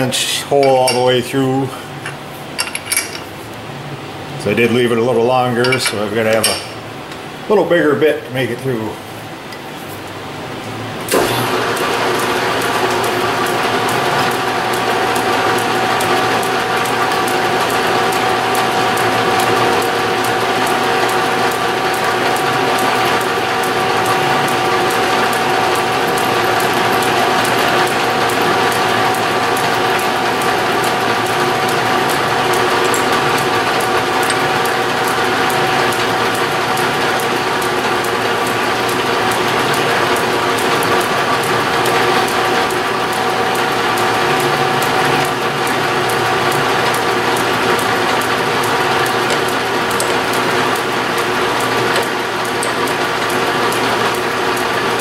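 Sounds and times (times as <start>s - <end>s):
metal lathe whining: 11.1s - 55.0s.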